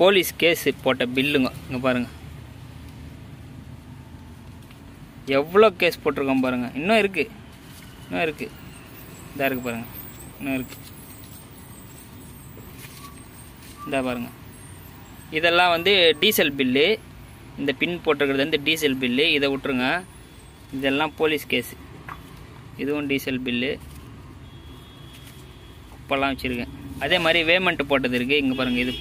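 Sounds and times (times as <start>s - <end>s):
motor vehicle hum: 1.5s - 6.2s, 21.6s - 29.0s.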